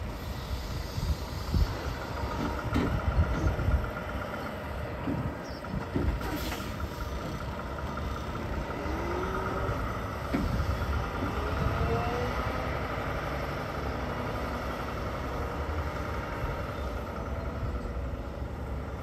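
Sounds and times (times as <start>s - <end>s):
diesel truck engine running: 0.0s - 19.0s.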